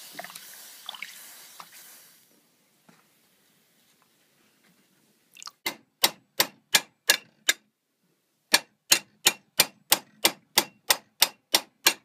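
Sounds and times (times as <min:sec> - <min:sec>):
hammer striking metal plate: 0:05.7 - 0:07.6, 0:08.5 - 0:12.0.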